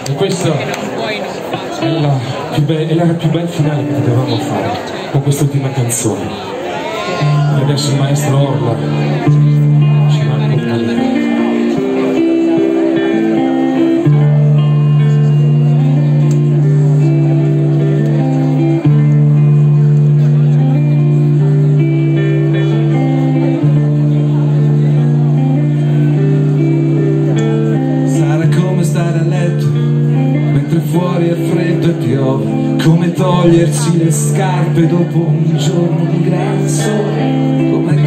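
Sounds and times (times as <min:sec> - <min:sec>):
live band playing through speakers: 0:00.0 - 0:38.0
voices: 0:00.0 - 0:38.0.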